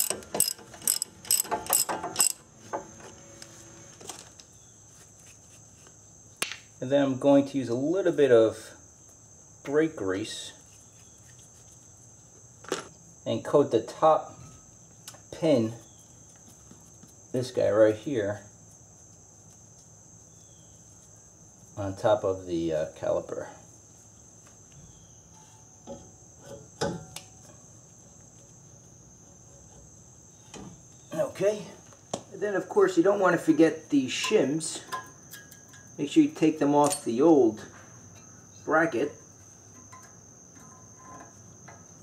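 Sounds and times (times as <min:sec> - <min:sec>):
high-pitched insect trill: 0:00.0 - 0:42.0.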